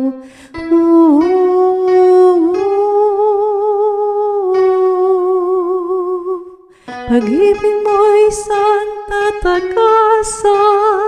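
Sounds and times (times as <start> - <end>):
alto voice singing with vibrato: 0.0 - 11.0.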